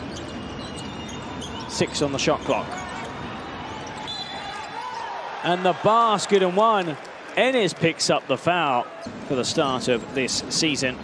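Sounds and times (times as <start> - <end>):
arena crowd hum: 0.0 - 11.0.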